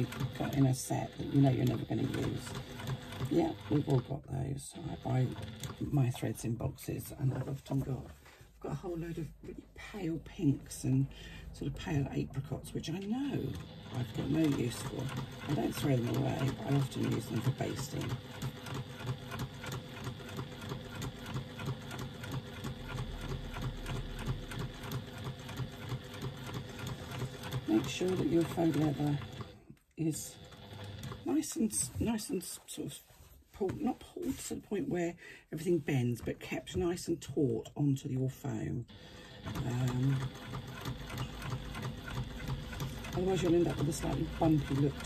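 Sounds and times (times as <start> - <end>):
sewing machine running: 0.0 - 7.5, 11.2 - 32.2, 38.9 - 45.0.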